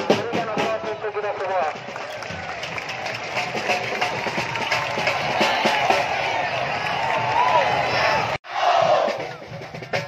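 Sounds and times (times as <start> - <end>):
crowd chanting and shouting: 0.0 - 9.6
drums beating: 0.0 - 10.0.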